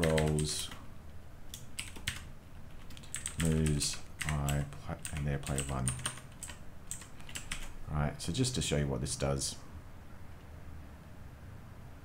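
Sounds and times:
computer keyboard typing: 0:00.0 - 0:00.8, 0:01.5 - 0:07.8.

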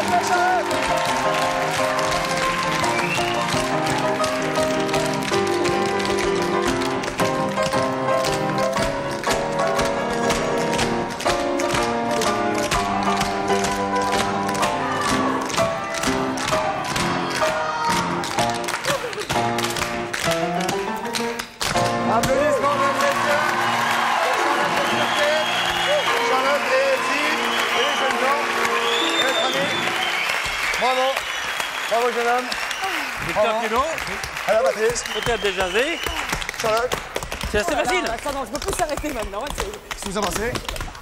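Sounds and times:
upbeat music: 0:00.0 - 0:31.2
tap shoes on hard floor: 0:37.0 - 0:41.0.

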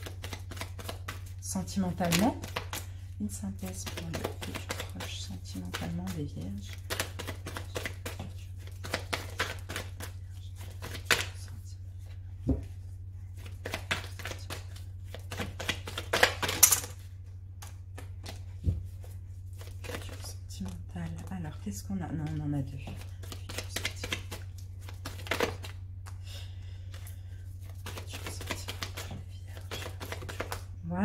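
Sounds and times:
steady low hum: 0:00.0 - 0:31.0
cards clicking and snapping: 0:13.6 - 0:17.0, 0:27.8 - 0:30.6.

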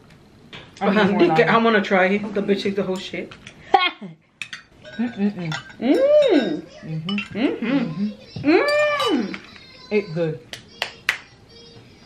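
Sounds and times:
woman humming while eating: 0:05.0 - 0:09.5.

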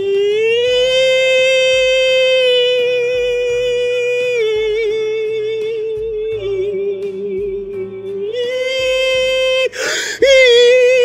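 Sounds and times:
low bass accompaniment: 0:00.0 - 0:11.0
person singing a long note: 0:00.0 - 0:11.0.

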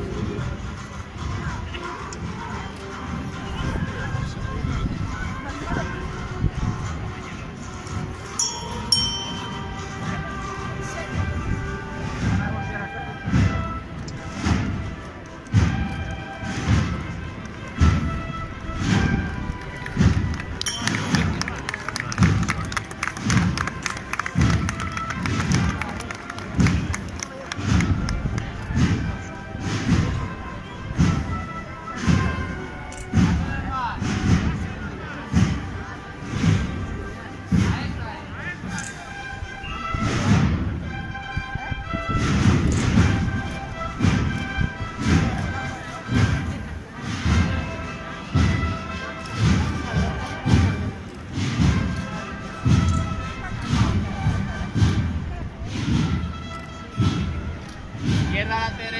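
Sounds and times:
procession band playing slow march: 0:00.0 - 0:58.9
bass drum beating: 0:57.0 - 0:58.6.

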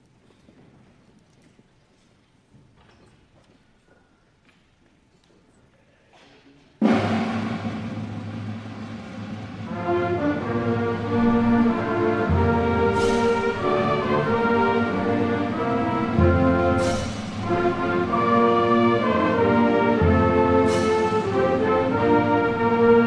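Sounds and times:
timpani roll: 0:06.8 - 0:23.0.

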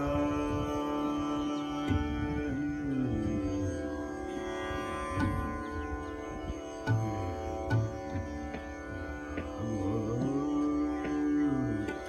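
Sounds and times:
man singing long gliding notes: 0:00.0 - 0:12.0
tanpura drone: 0:00.0 - 0:12.0
tabla strokes: 0:05.1 - 0:12.0.

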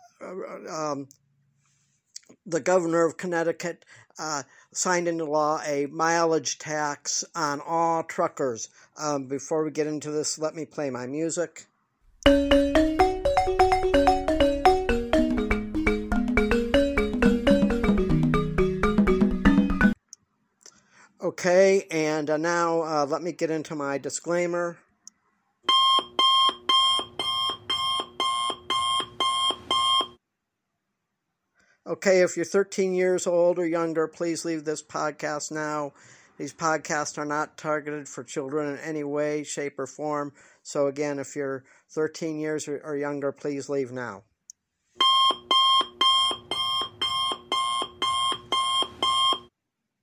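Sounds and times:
electronic alarm beeping: 0:25.7 - 0:30.2, 0:45.0 - 0:49.5.

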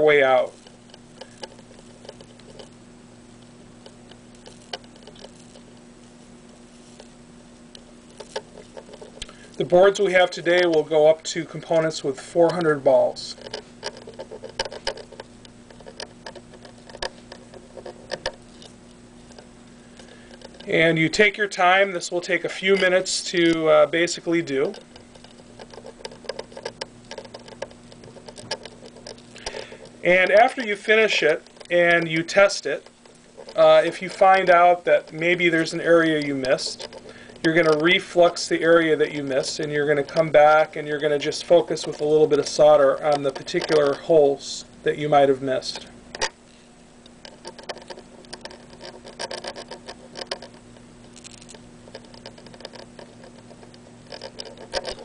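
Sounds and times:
soldering flux crackling and spitting: 0:00.0 - 0:55.0
steady low hum: 0:00.0 - 0:55.0.

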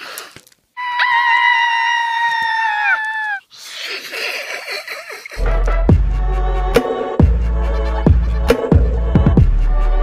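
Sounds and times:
girl screaming: 0:00.8 - 0:03.5.

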